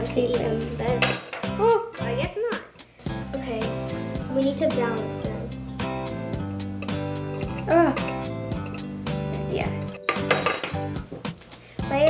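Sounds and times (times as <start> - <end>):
background music: 0.0 - 12.0
metal nails clinking: 1.0 - 2.0, 6.6 - 9.0, 9.8 - 11.0.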